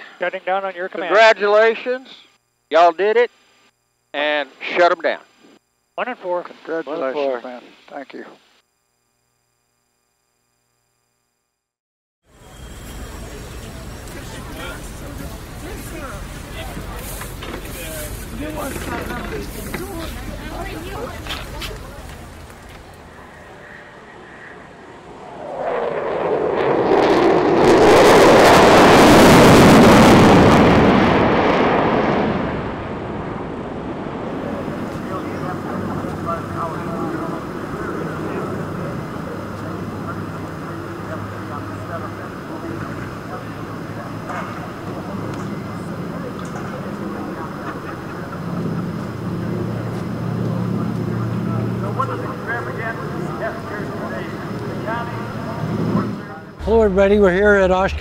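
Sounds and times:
crowd noise: 0:12.4 - 0:25.0, 0:34.4 - 0:58.0
distant aircraft noise: 0:12.4 - 0:58.0
fighter jet roaring past: 0:23.0 - 0:58.0.

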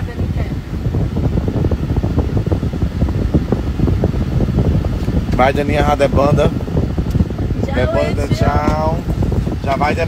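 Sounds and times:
car air-conditioning blower rushing: 0:00.0 - 0:10.0.

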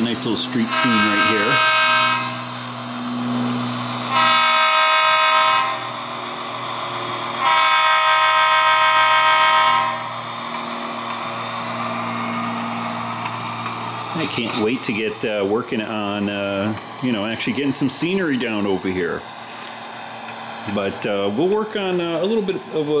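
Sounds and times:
model locomotive horn: 0:00.0 - 0:03.2, 0:03.8 - 0:10.2
low diesel engine hum: 0:00.0 - 0:23.0.

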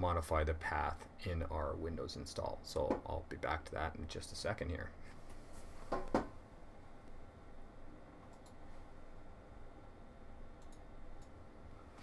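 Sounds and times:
computer mouse clicks: 0:08.3 - 0:08.6, 0:10.6 - 0:11.4.

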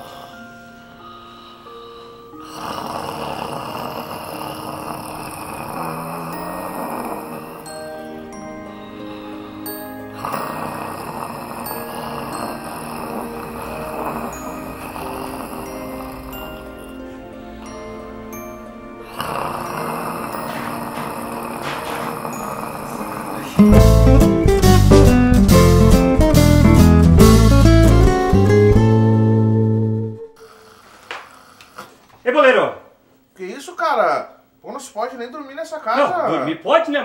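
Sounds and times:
light music with bell-like notes: 0:00.0 - 0:29.8
man snoring loudly: 0:02.3 - 0:28.8, 0:30.4 - 0:32.0.

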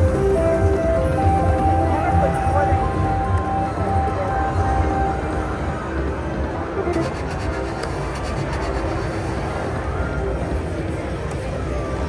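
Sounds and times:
slot machine game music: 0:00.0 - 0:07.8.

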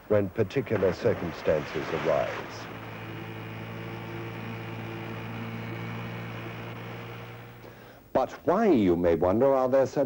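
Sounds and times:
boat engine running: 0:00.1 - 0:07.8
water wash: 0:00.4 - 0:06.8.

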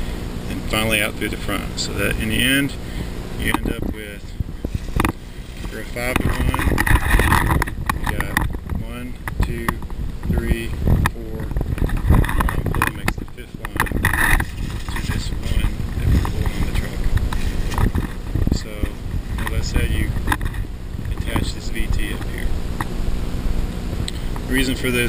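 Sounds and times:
microphone handling noise: 0:00.0 - 0:25.0
wind rumble: 0:02.5 - 0:24.1
muffled voices: 0:08.0 - 0:17.9.

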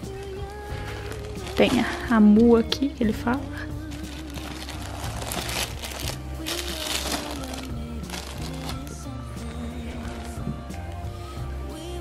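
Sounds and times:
background music: 0:00.0 - 0:12.0
foil gift wrap crinkling: 0:00.1 - 0:10.6.

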